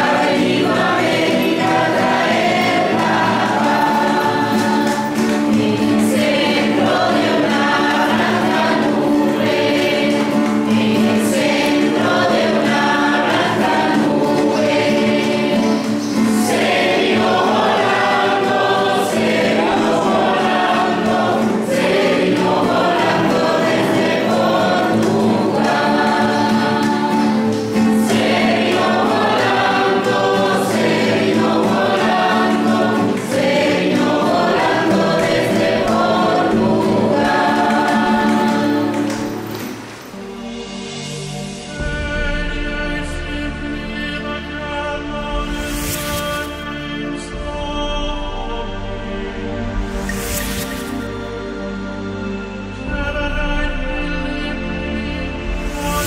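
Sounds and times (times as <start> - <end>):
choir singing: 0.0 - 56.0.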